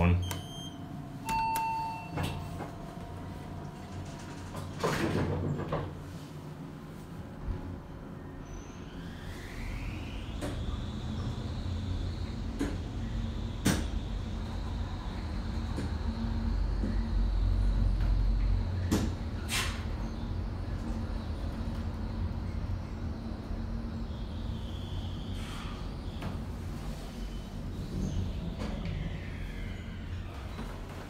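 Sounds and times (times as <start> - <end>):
elevator motor whine: 7.5 - 19.4.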